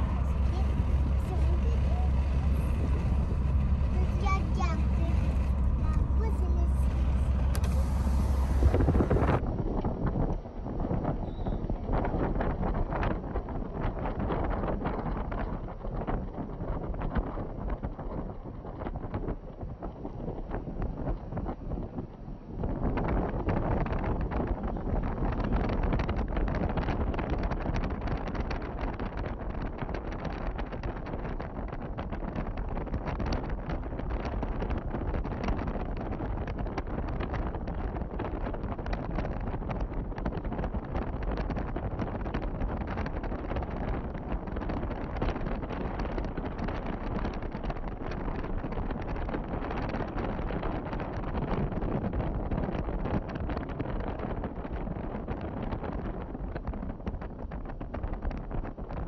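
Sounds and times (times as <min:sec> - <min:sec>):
car road noise: 0:00.0 - 0:59.0
wind rushing over microphone: 0:00.0 - 0:59.0.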